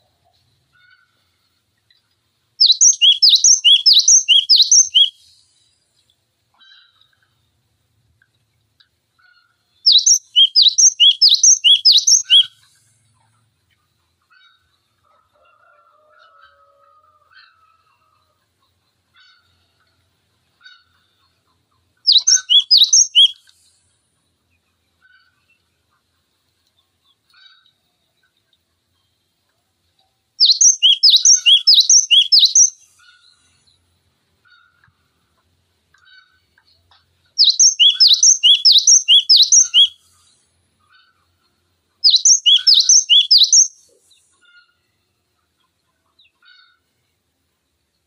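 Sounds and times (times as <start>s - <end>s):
faint bird chips: 22.1s - 23.8s.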